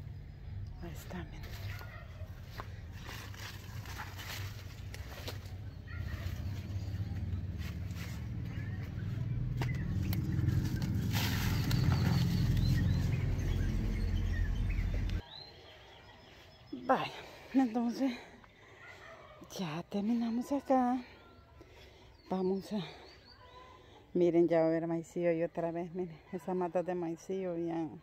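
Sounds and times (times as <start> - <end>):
stems crackling: 0.9 - 15.2
leaves rustling: 1.4 - 8.8, 10.2 - 14.2
weeds pulled up by hand: 1.4 - 8.9, 9.6 - 13.4.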